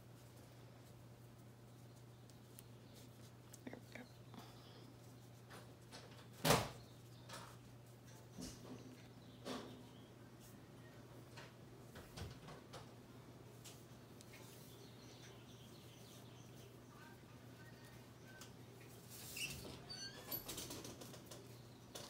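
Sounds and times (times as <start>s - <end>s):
cord rustling and rubbing: 0.0s - 9.0s.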